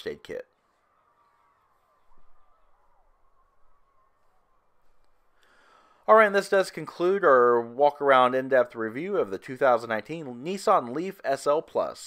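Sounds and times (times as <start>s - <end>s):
faint birds chirping: 0.0s - 5.8s.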